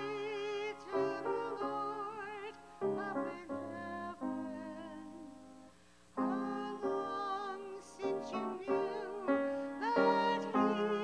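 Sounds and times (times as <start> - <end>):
piano accompaniment: 0.0 - 11.0
woman singing with vibrato: 6.2 - 11.0.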